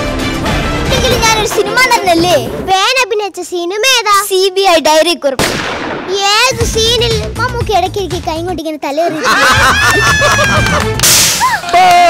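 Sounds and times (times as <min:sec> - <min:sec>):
man laughing: 0:09.0 - 0:10.9.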